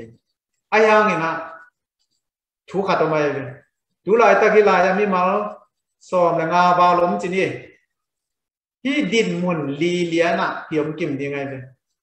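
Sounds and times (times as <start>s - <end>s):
man speaking: 0.0s - 1.8s, 2.6s - 7.9s, 8.8s - 12.0s.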